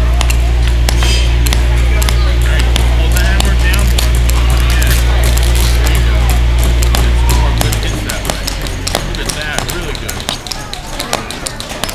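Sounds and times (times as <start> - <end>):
loud steady low drone: 0.0 - 11.9
hammers tapping nails into wood: 0.1 - 11.9.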